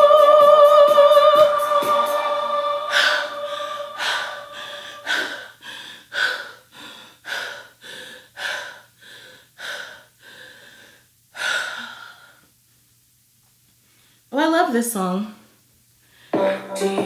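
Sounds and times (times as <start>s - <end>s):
woman breathing heavily: 2.9s - 12.6s.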